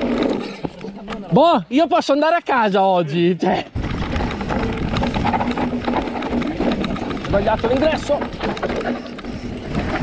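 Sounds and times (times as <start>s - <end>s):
bike rattles and knocks: 0.0s - 1.4s, 3.7s - 10.0s
bike tyres on loose dirt: 0.0s - 2.1s, 3.4s - 10.0s
wind rumbling on microphone: 3.7s - 10.0s.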